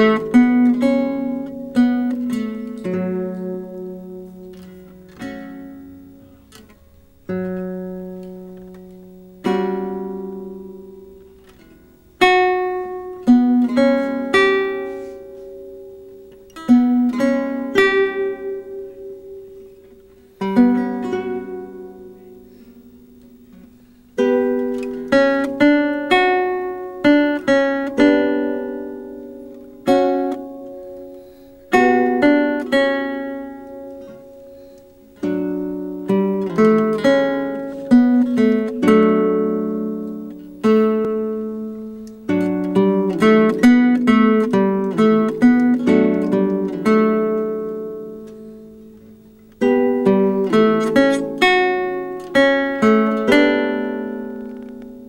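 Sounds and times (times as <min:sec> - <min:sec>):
guitar bass notes: 0:00.0 - 0:55.0
lute plucked melody: 0:00.0 - 0:55.0.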